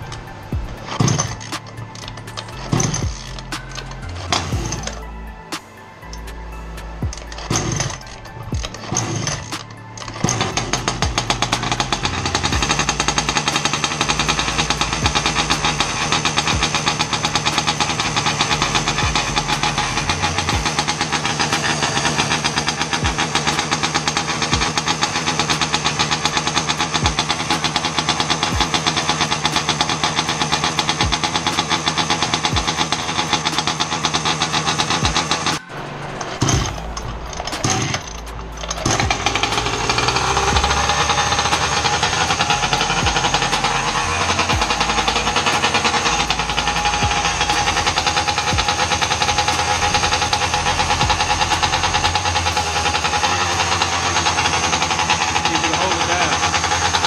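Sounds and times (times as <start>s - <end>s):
two-stroke engine running: 0.0s - 57.0s.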